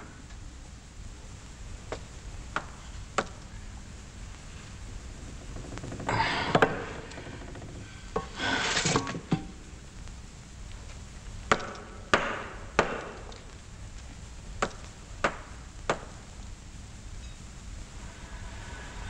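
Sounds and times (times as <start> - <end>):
pick scraping rock: 5.3 - 9.3
hand tool scraping rubble: 8.2 - 9.4.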